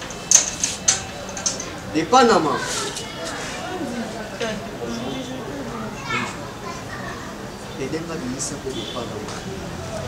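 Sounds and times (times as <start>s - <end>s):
children playing: 0.0s - 10.0s
people speaking: 2.0s - 10.0s.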